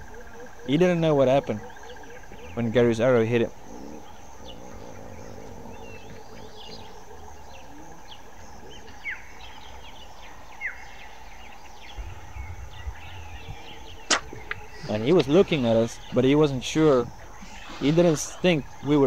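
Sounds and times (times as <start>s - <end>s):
bird chirps: 0.0s - 19.0s
outdoor bush ambience: 0.0s - 19.0s
sharp bow snap: 14.1s - 14.6s.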